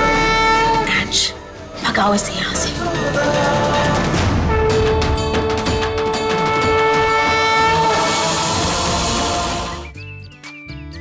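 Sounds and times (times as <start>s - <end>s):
horn-like synth note: 0.0s - 1.4s, 4.4s - 10.0s.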